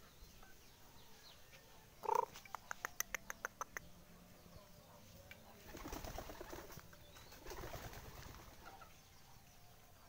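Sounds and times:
rooster clucking: 0:02.0 - 0:03.9.

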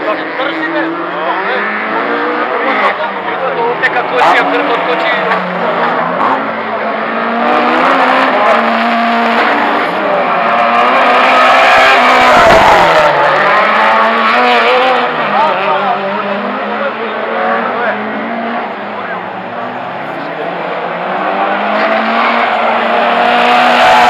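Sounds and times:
racing car engines revving: 0:00.0 - 0:24.0.

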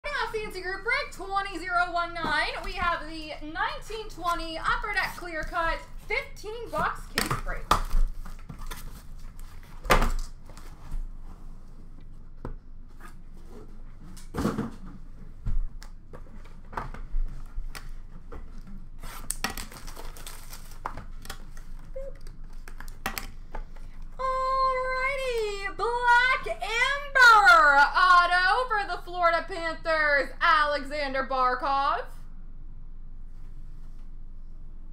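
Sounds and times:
person speaking: 0:00.0 - 0:07.7, 0:24.2 - 0:32.1.

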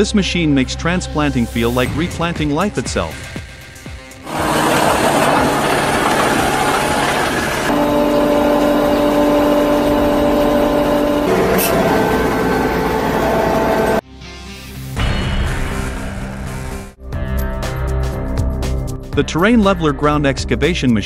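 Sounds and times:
diesel engine and hydraulics: 0:01.2 - 0:14.0.

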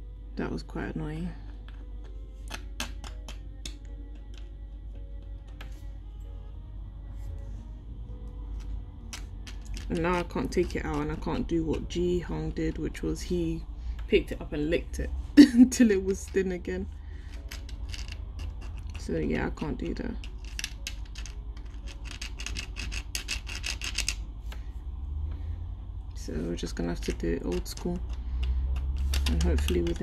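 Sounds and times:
background music: 0:00.0 - 0:23.2
pin scratching candy in pan: 0:17.4 - 0:19.0, 0:20.2 - 0:24.2.

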